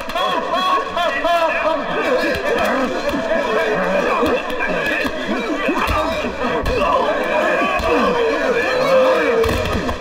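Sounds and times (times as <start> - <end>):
men yelling and whooping: 0.0 - 10.0.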